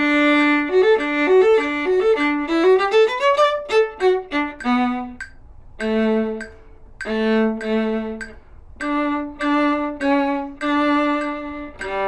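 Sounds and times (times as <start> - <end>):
solo viola bowed: 0.0 - 12.0.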